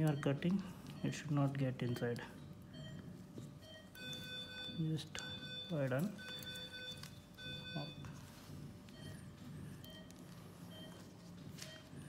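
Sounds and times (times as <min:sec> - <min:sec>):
electronic alarm tones: 0:00.0 - 0:12.0.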